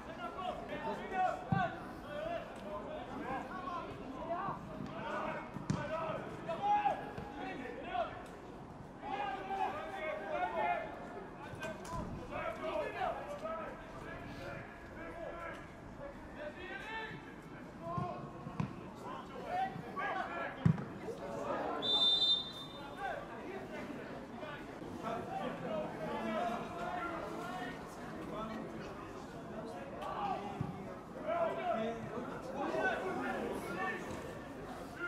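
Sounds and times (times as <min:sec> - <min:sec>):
referee's whistle: 0:21.8 - 0:23.0.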